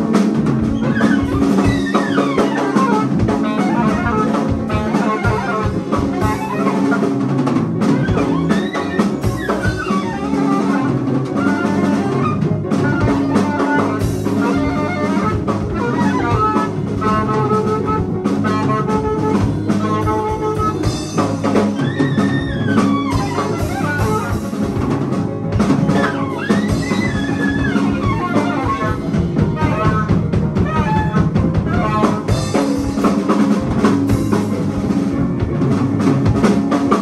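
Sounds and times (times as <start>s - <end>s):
busy drum kit: 0.0s - 37.0s
free jazz quartet playing: 0.0s - 37.0s.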